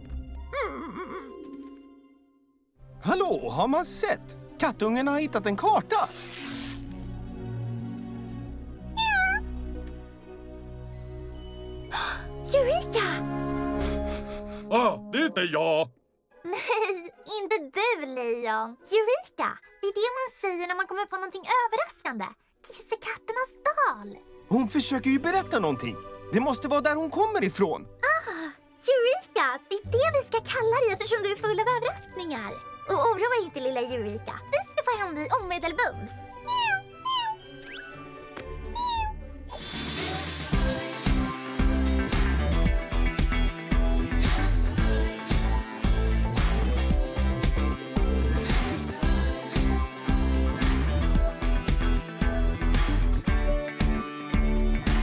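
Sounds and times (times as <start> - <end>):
soft background music: 0.0 - 55.0
cartoon kitten meowing: 8.9 - 9.5, 36.4 - 37.5, 38.6 - 39.2.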